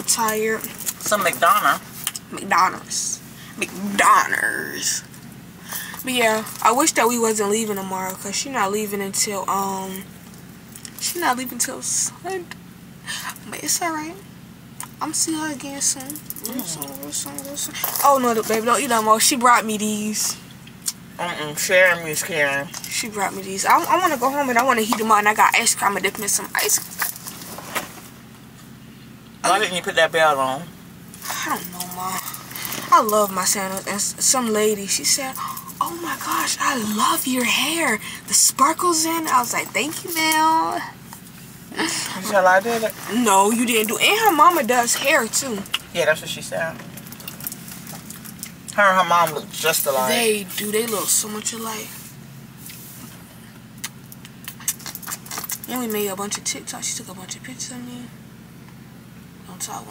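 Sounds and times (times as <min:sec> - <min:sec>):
vehicle cabin hum: 0:00.0 - 0:59.9.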